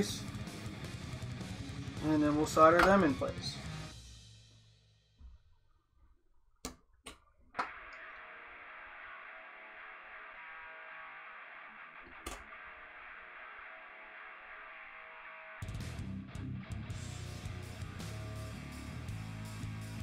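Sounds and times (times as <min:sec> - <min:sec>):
quiet guitar music: 0:00.0 - 0:03.9, 0:15.6 - 0:20.0.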